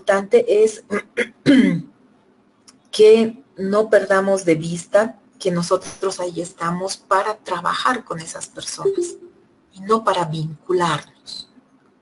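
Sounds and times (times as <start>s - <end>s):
person clearing throat: 0.9s - 1.9s.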